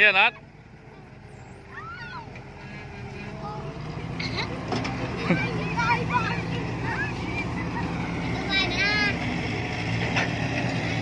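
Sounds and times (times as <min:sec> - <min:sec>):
children calling out: 0:01.6 - 0:02.6, 0:03.2 - 0:09.3.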